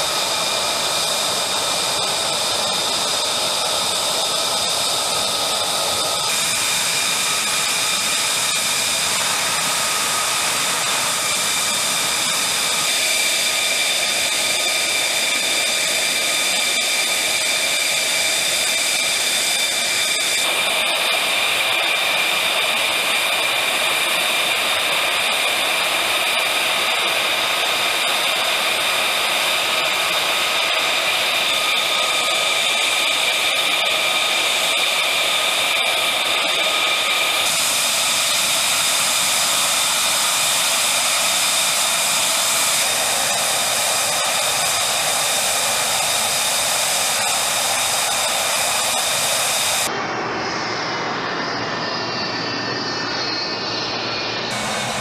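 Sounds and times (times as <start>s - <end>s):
jet engine idling: 0.0s - 55.0s.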